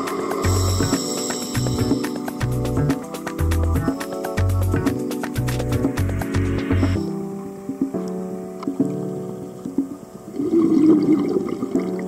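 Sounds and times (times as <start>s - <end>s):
regulator bubbles gurgling underwater: 10.3s - 12.0s.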